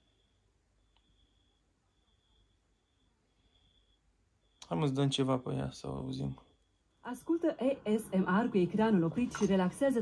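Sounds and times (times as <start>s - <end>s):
faint high-pitched tone: 0.0s - 10.0s
man speaking: 4.6s - 6.4s.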